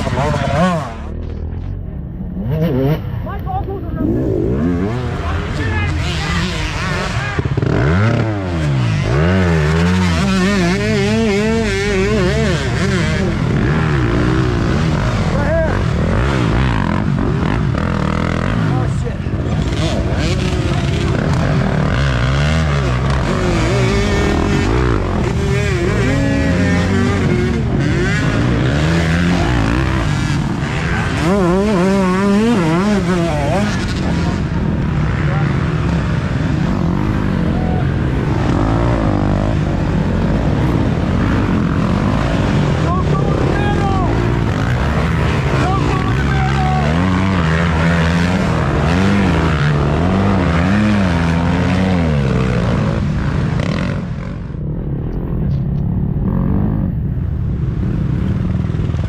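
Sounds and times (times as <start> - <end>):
dirt bike engines revving: 0.0 - 59.0.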